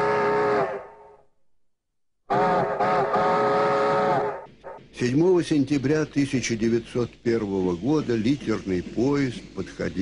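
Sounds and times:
steam locomotive whistle: 0.0s - 1.2s, 2.3s - 4.9s.

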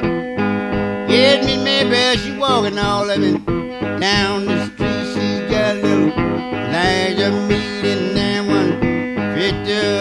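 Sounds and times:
blues guitar playing: 0.0s - 10.0s.

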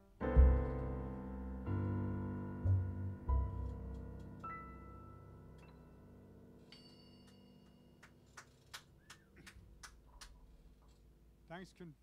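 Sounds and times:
jazz keyboard and upright bass: 0.0s - 6.5s.

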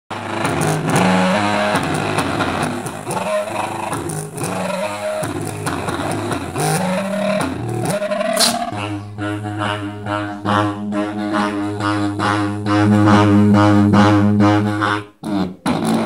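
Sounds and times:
overdriven bass notes from loudspeaker: 0.1s - 16.0s.

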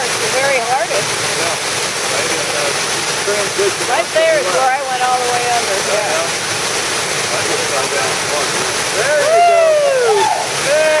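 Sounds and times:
waterfall pouring into pool: 0.0s - 11.0s.

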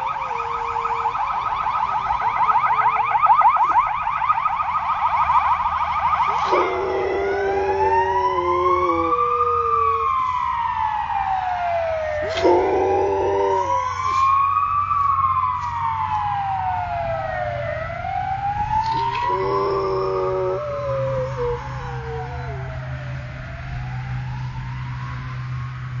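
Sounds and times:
dog howling: 0.0s - 1.4s, 6.3s - 10.4s, 12.0s - 14.4s, 18.8s - 23.1s
ambulance siren wailing: 0.0s - 26.0s.

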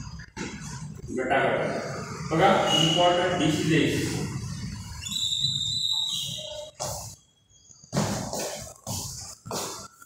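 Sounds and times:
high-pitched steady tone: 4.4s - 7.9s.

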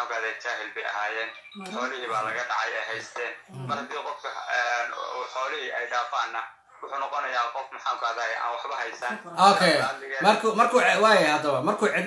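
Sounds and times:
person talking: 1.6s - 5.3s, 9.0s - 12.0s.

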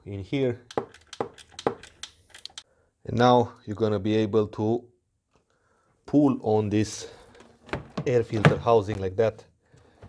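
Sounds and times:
socket ratchet clicking: 0.7s - 2.6s.

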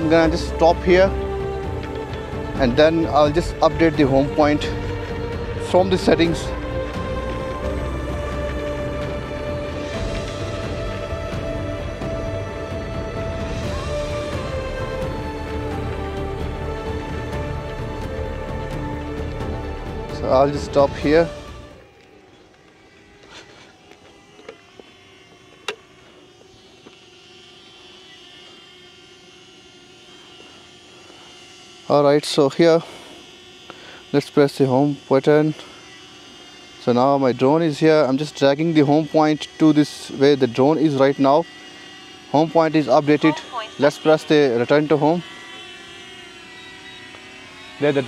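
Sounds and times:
drone propellers humming: 0.0s - 48.0s.

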